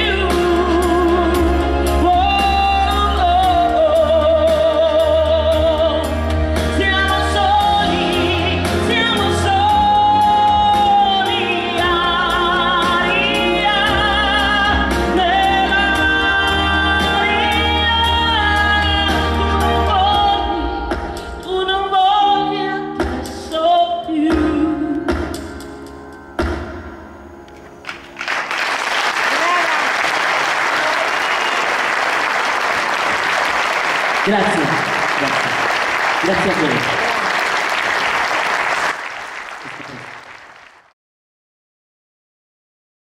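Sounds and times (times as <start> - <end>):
woman singing with vibrato: 0.0 - 20.8
audience applauding: 27.8 - 40.9.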